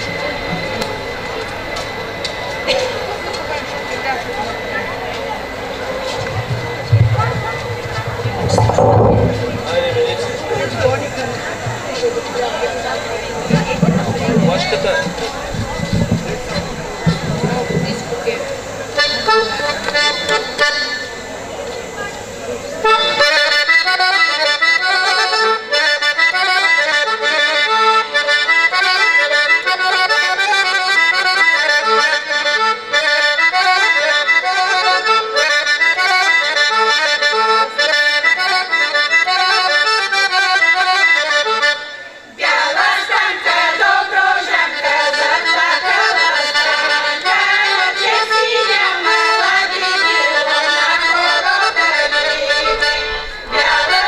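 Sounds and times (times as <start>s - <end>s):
accordion playing folk tune: 0.0s - 54.0s.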